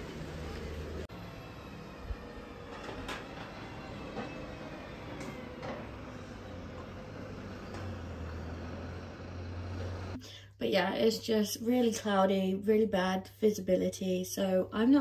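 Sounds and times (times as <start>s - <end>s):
distant heavy machinery humming: 0.0s - 10.2s.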